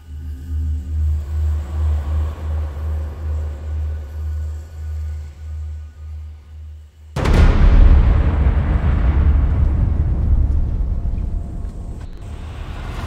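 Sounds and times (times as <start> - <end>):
deep cinematic boom: 7.2 - 13.0
long deep rumble: 7.2 - 13.0.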